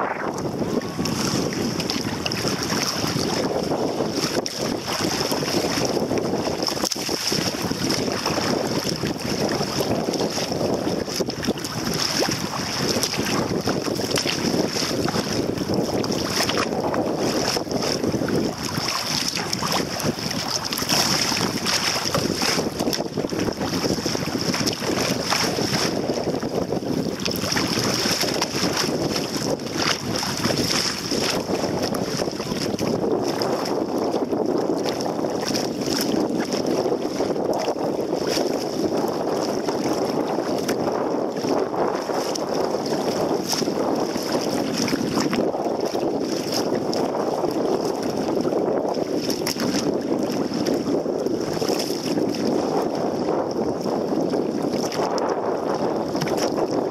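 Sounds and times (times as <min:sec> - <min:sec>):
water splashing against kayak hull: 0:00.0 - 0:56.9
wind buffeting microphone: 0:00.0 - 0:56.9.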